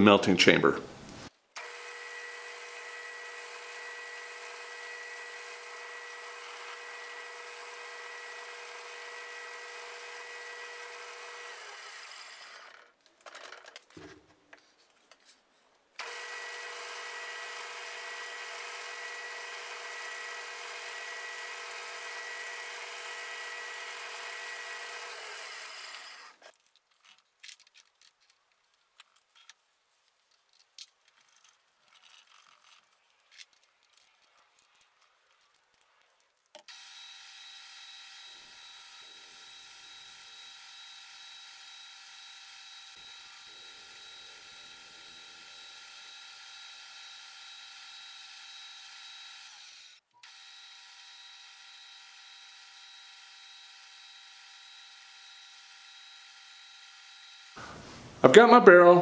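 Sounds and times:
metal lathe whining: 1.6s - 12.7s, 16.0s - 26.4s.

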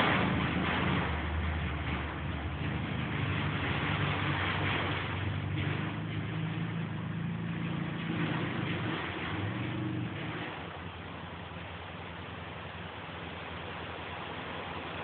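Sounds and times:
quad engine running: 0.0s - 13.6s.

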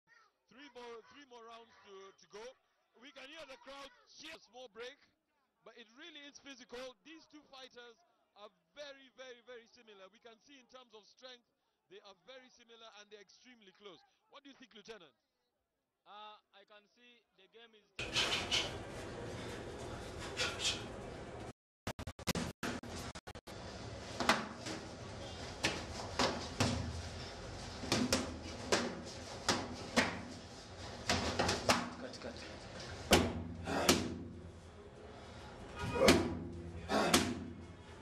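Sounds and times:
kicks and gloves smacking pads: 24.2s - 32.0s, 32.8s - 34.4s, 35.8s - 37.7s.

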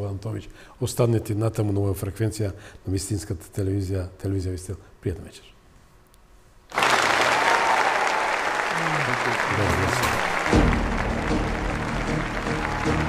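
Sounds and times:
recorded applause: 6.7s - 13.0s
theme music: 9.5s - 13.0s.

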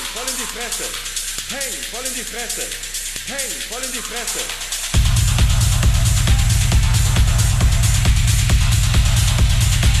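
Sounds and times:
fast hi-hats: 0.0s - 10.0s
techno kick and bass: 0.0s - 10.0s.

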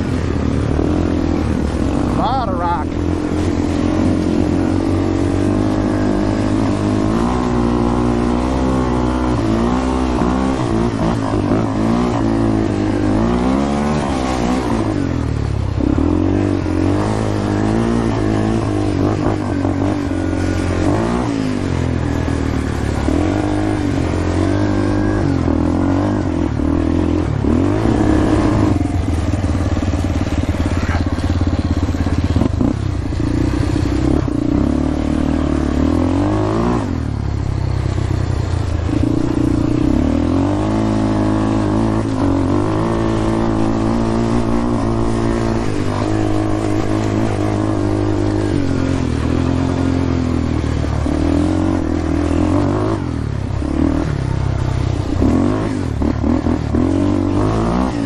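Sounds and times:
atv engine revving: 0.0s - 58.0s.

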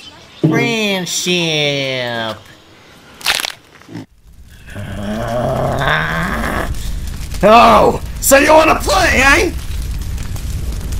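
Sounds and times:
sharp crunch-like burst: 3.2s - 10.9s
low strained vocal growl: 3.9s - 6.9s.

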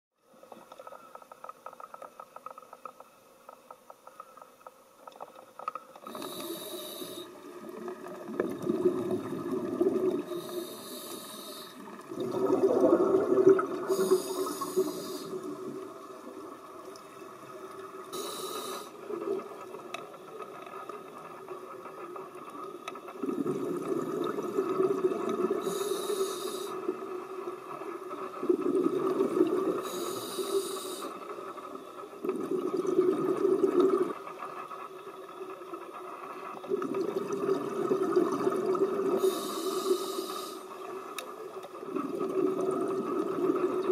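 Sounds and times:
regulator hissing inhalations: 6.0s - 7.4s, 10.2s - 11.9s, 13.8s - 15.5s, 18.1s - 19.0s, 25.6s - 26.8s, 29.8s - 31.2s, 39.2s - 40.8s
exhaled bubbles rushing: 7.4s - 10.6s, 11.8s - 17.0s, 23.1s - 25.6s, 28.4s - 29.8s, 32.2s - 34.2s, 36.7s - 39.2s, 41.9s - 43.9s.

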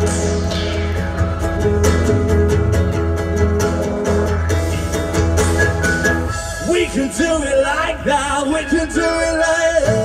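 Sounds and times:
pop-rock band instrumental: 0.0s - 10.0s.

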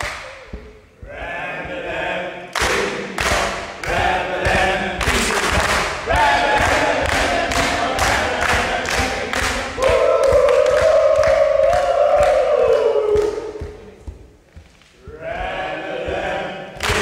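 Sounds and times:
people clapping in rhythm: 0.0s - 17.0s
group singing long held note: 0.2s - 14.2s, 15.0s - 17.0s.

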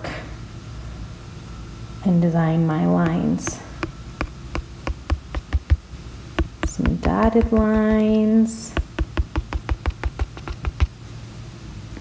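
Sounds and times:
taps on a glass touchscreen: 8.8s - 10.9s.

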